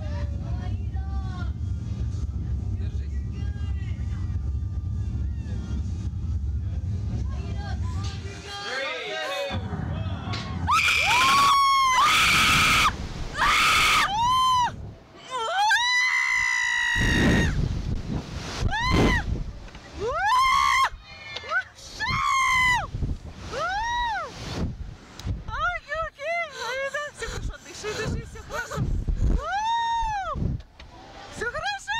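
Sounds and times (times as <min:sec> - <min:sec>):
people screaming: 0:09.2 - 0:17.6, 0:20.0 - 0:22.9
wind noise on microphone: 0:16.9 - 0:21.0, 0:22.0 - 0:25.8, 0:27.4 - 0:30.7.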